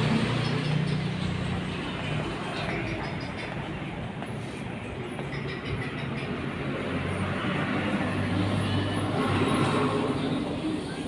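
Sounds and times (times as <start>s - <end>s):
street noise: 0.0s - 11.0s
vehicle engine humming: 0.0s - 11.0s.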